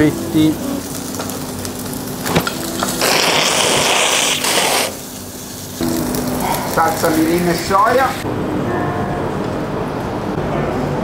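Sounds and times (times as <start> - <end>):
beef sizzling in a skillet: 0.0 - 8.2.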